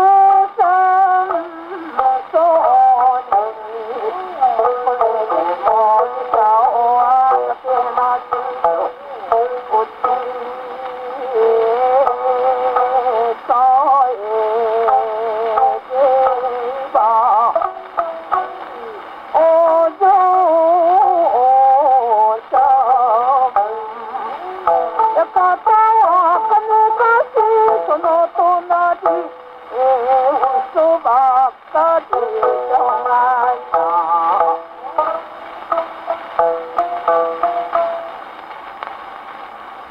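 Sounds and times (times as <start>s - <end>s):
woman singing ornamented line: 0.0s - 38.1s
plucked shamisen notes: 0.0s - 38.6s
record surface hiss: 0.0s - 39.9s.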